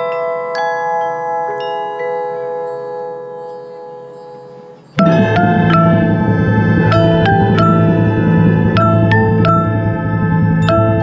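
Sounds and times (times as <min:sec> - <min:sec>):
mallet percussion notes: 0:00.0 - 0:11.0.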